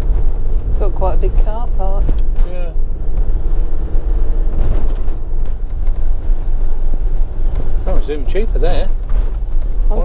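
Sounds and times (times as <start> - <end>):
engine and tyre rumble: 0.0 - 10.0.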